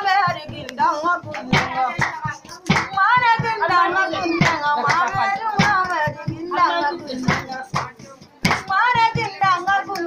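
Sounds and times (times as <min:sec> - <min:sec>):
person singing with vibrato: 0:00.0 - 0:10.0
rhythmic hand percussion: 0:00.0 - 0:10.0.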